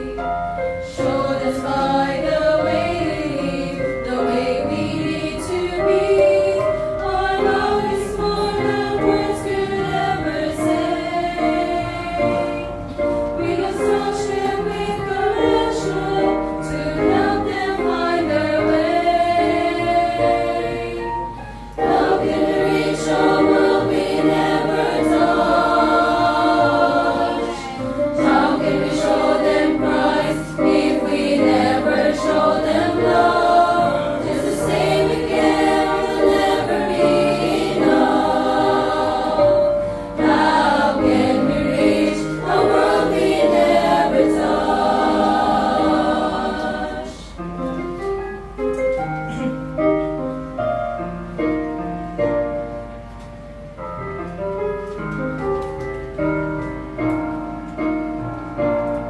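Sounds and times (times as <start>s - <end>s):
women's choir singing a hymn: 0.0s - 47.7s
recorded accompaniment: 0.0s - 59.0s.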